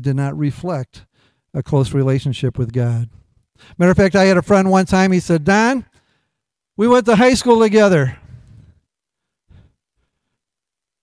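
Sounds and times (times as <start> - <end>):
man speaking: 0.0 - 3.2, 3.8 - 5.9, 6.8 - 8.3
breath at microphone: 8.2 - 10.5.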